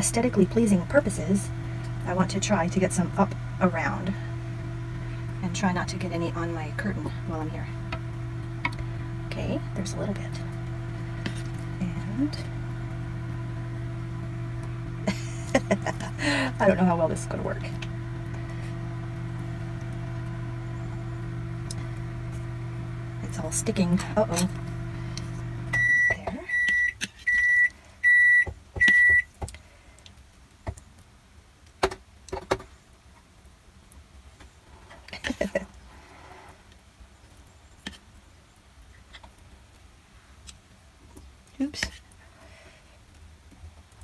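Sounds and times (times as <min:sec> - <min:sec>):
low mechanical motor hum: 0:00.0 - 0:29.3.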